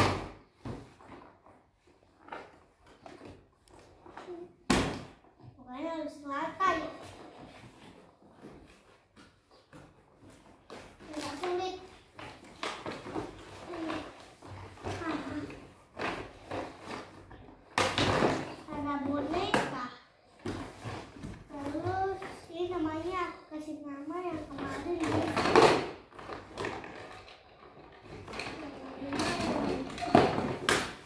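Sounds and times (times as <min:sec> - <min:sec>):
girl talking: 0:05.6 - 0:07.0, 0:11.1 - 0:11.9, 0:18.7 - 0:20.1, 0:21.5 - 0:25.3, 0:28.6 - 0:30.1.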